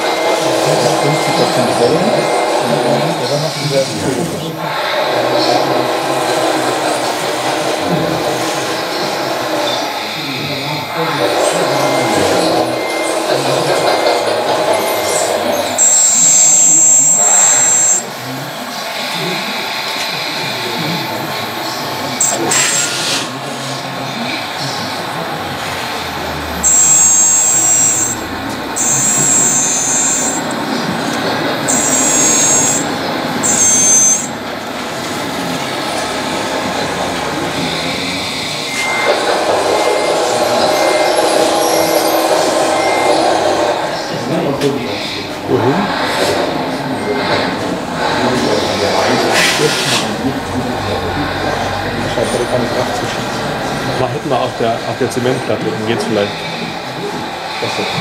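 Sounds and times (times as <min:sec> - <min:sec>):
crowd chatter: 0:00.0 - 0:58.0
hydraulic pump whining: 0:00.0 - 0:58.0.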